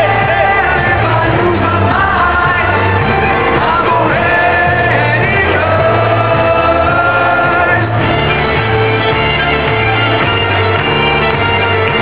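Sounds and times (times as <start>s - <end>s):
steady bass line: 0.0s - 12.0s
violins playing long held notes: 0.0s - 12.0s.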